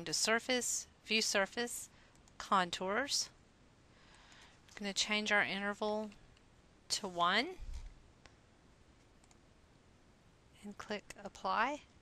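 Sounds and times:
computer mouse clicks: 2.1s - 2.4s, 9.2s - 9.4s.

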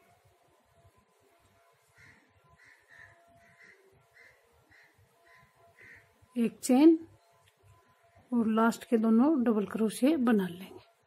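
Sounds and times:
distant bird calls: 1.9s - 6.3s.

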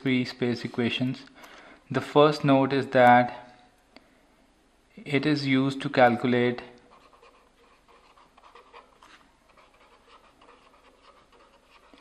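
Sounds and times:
pen scratching on paper: 6.9s - 12.0s.

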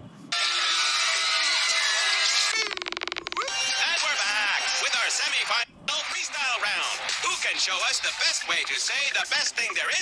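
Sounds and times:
background music: 0.3s - 9.5s.

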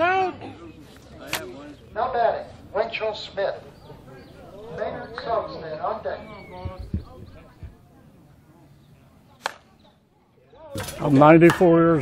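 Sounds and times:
bat striking a softball: 9.4s - 9.7s.

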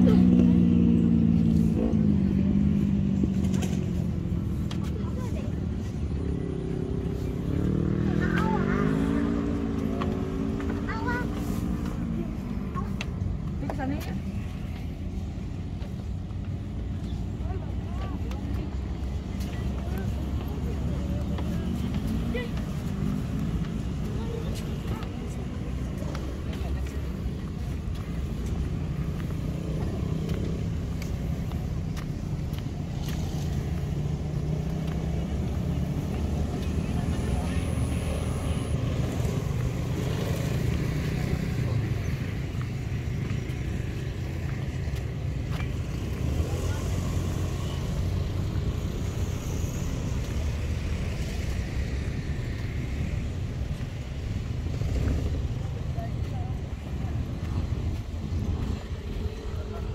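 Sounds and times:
passing vehicle engine drone: 0.0s - 15.7s, 17.4s - 59.9s
faint voices: 0.0s - 59.9s
road traffic rumble: 0.0s - 59.9s.

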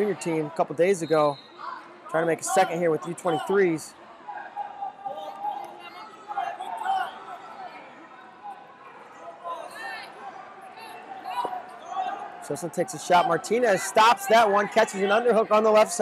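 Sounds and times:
people calling out in echoing hall: 1.4s - 16.0s.

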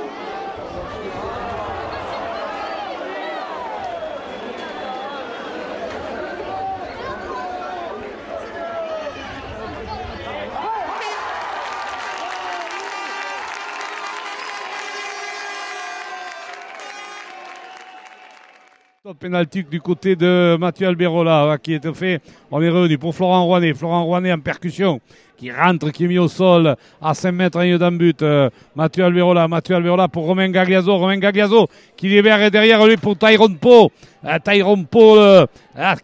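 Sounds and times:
crowd cheering and applause: 0.0s - 9.3s, 10.4s - 19.0s
crowd shouting: 0.0s - 18.8s.

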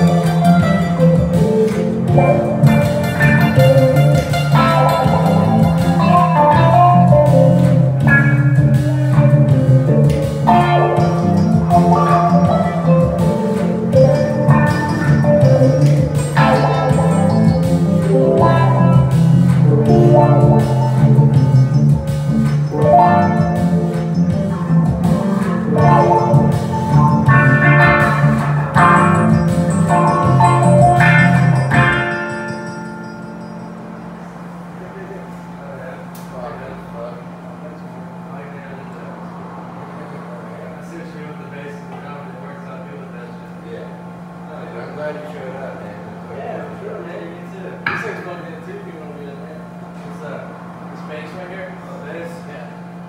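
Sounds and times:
programmed beat: 0.0s - 34.0s
electric guitar melody: 0.0s - 34.8s
keyboards: 0.0s - 42.6s
low bass line: 0.0s - 42.6s.

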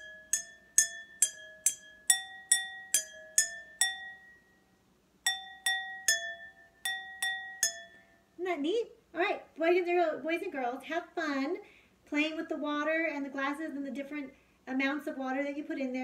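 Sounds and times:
pencil tapping water glasses: 0.0s - 4.4s, 5.3s - 8.1s.

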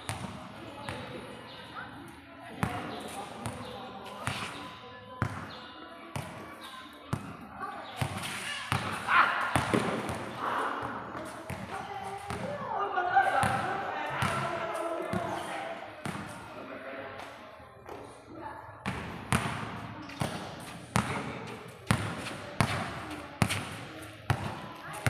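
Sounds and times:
basketball bouncing on concrete: 18.8s - 25.0s.

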